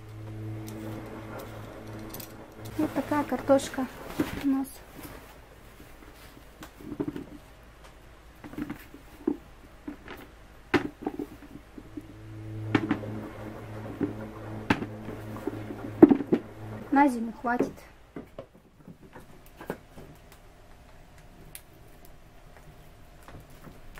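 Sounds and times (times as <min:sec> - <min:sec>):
steady low hum: 0:00.0 - 0:18.3.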